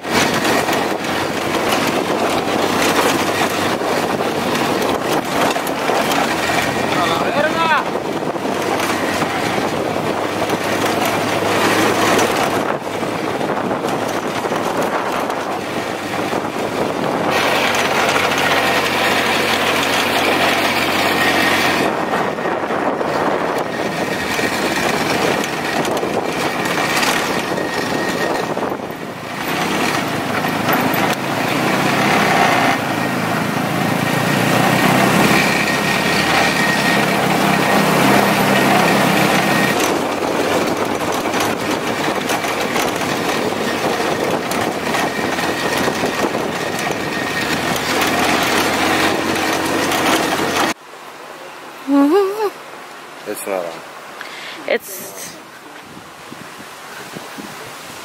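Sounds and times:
buggy engine running: 0.0s - 50.8s
road and wind noise: 0.0s - 58.0s.

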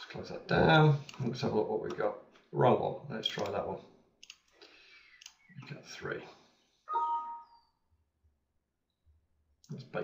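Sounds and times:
computer alert chime: 6.9s - 7.6s.

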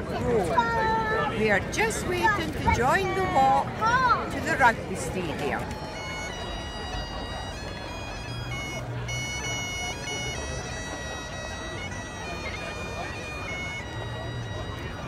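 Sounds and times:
crowd chatter: 0.0s - 15.0s
bagpipes playing: 4.4s - 15.0s.

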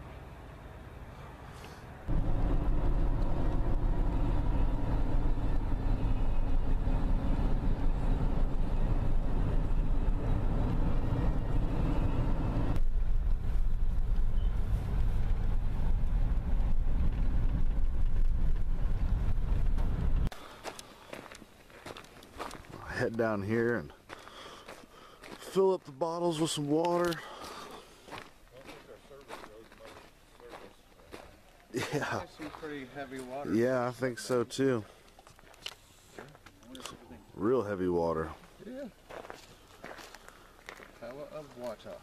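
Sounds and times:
vehicle engine and tyres rumbling: 0.0s - 42.0s
faint footsteps on trail: 17.2s - 42.0s.

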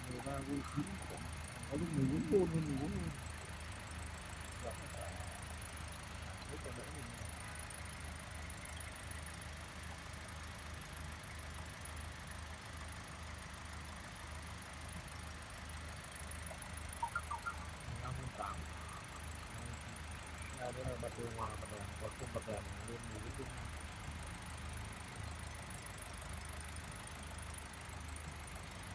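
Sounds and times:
car engine idling: 0.0s - 28.9s.

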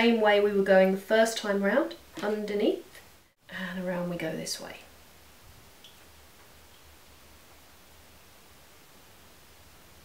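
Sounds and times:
faint hiss: 1.9s - 10.0s.

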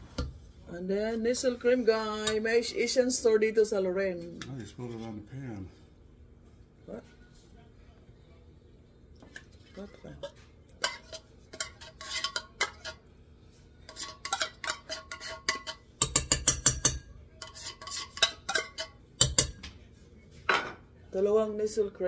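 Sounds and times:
metal spoon scraping in tin can: 9.7s - 13.0s, 13.8s - 16.2s, 17.4s - 19.5s.

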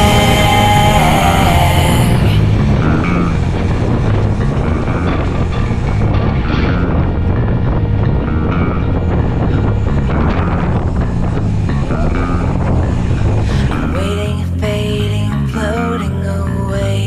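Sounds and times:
bicycle tyre noise on road: 0.0s - 14.0s
music track: 0.0s - 17.0s
wind rumbling on microphone: 0.0s - 17.0s.

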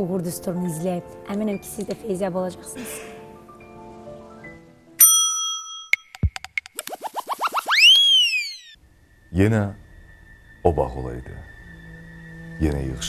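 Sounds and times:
soft music: 0.0s - 6.2s, 9.2s - 13.0s
bright bell ding: 5.0s - 6.2s
quick falling tone: 5.7s - 8.8s
quick rising chirps: 6.1s - 13.0s.

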